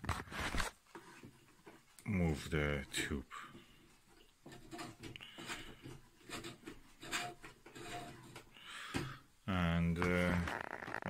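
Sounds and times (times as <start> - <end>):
metal knob rubbing and scraping: 4.4 - 8.5, 10.0 - 11.0.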